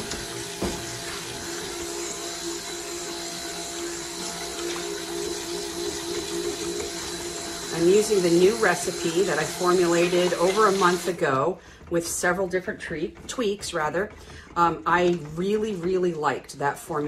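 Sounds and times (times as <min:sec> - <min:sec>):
stick blender running: 0:00.0 - 0:16.5.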